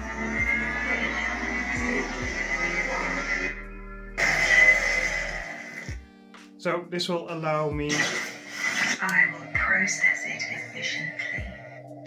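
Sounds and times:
electronic lightsaber hum: 0:00.0 - 0:06.0
hissing swell: 0:00.0 - 0:06.0.

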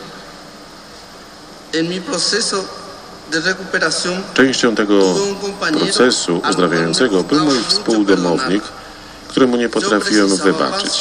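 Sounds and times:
steady background hiss: 0:00.0 - 0:11.0
man talking: 0:01.7 - 0:11.0.

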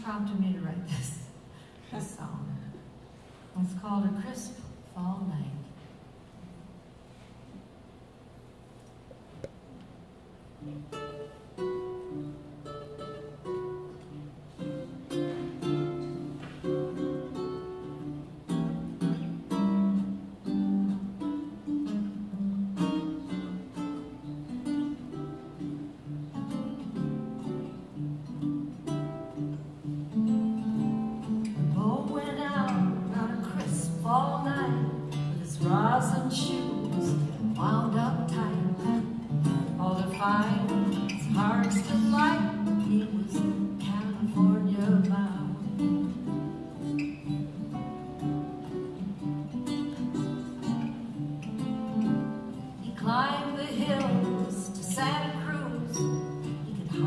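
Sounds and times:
archtop guitar playing swing: 0:09.6 - 0:57.0
ukulele playing melody: 0:10.7 - 0:31.6
baritone ukulele: 0:10.7 - 0:57.0.

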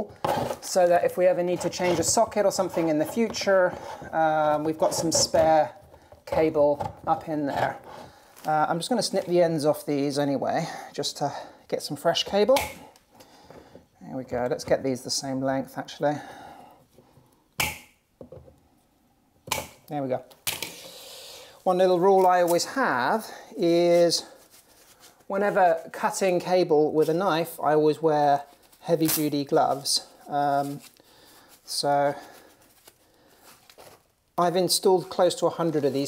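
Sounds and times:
gloved hands handling cable: 0:00.0 - 0:10.2, 0:11.2 - 0:15.2, 0:16.8 - 0:21.0, 0:21.6 - 0:36.0
person speaking: 0:00.0 - 0:13.0, 0:14.0 - 0:16.4, 0:19.8 - 0:24.5, 0:25.2 - 0:31.0, 0:34.4 - 0:36.0.

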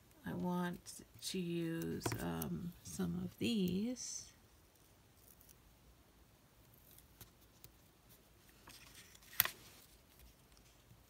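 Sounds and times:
faint paper rustling: 0:06.7 - 0:11.0.

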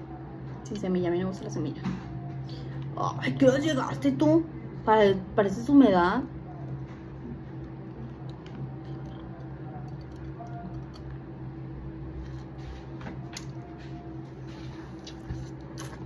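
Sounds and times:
steady low hum: 0:00.0 - 0:16.0
person chewing: 0:14.6 - 0:16.0.

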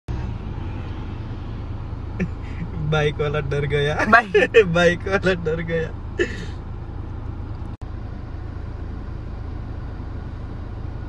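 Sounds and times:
vehicle engine idling: 0:00.1 - 0:11.0.

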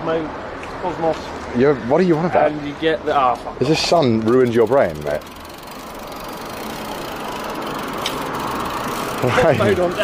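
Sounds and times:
passing vehicle rushing: 0:05.5 - 0:10.0.

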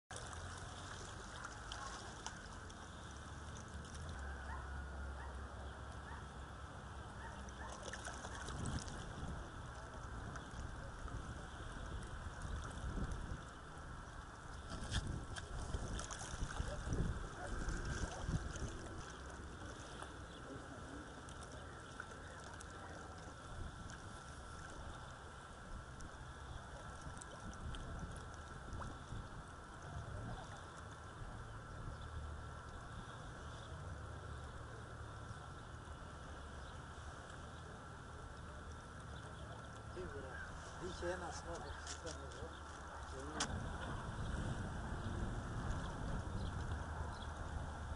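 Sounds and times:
waves lapping against rocky shore: 0:00.1 - 0:47.9.

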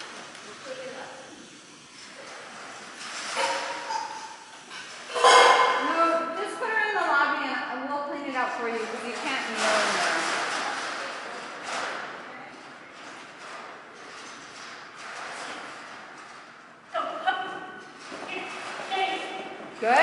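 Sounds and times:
indistinct voices echoing in hall: 0:16.8 - 0:20.0.

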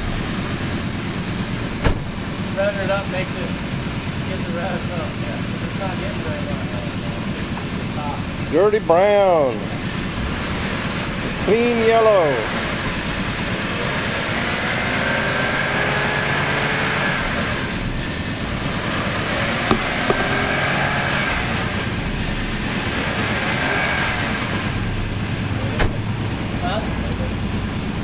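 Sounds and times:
air-powered machine hissing: 0:00.1 - 0:15.7, 0:17.0 - 0:28.0.

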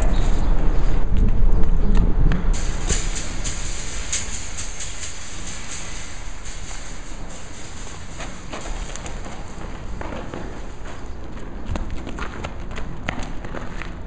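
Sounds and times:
low rumbling background: 0:00.0 - 0:13.6
footsteps on gravelly dirt: 0:09.6 - 0:14.0.

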